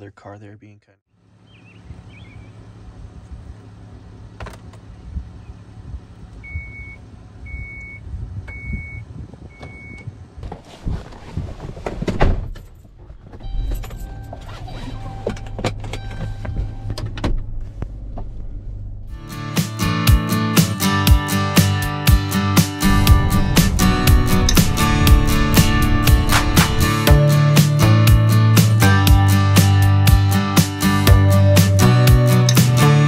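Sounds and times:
engine low hum: 1.1s - 19.4s, 22.8s - 30.2s
car warning chimes: 6.4s - 10.1s, 13.4s - 17.1s.

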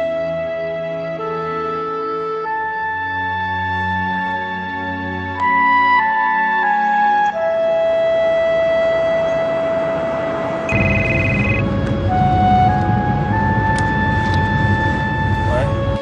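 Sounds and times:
soft music of long notes: 0.0s - 16.0s
mobile phone ringing: 10.7s - 11.7s.

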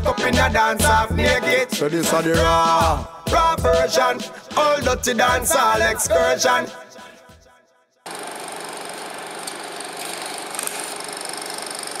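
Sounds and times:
mechanical whirring rattle: 8.1s - 12.0s.

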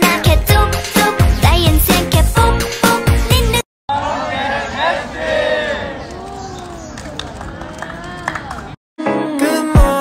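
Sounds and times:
group shouting and cheering: 3.9s - 6.0s.

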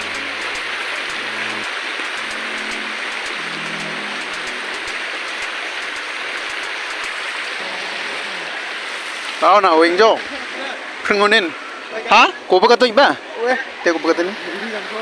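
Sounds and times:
river flowing over stones: 0.0s - 15.0s.

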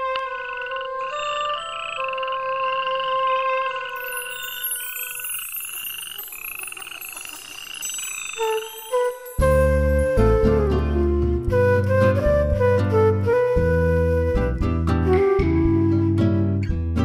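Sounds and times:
frog croaking: 0.0s - 8.8s
background music held notes: 0.0s - 17.0s
faint high twinkling: 3.0s - 10.3s.

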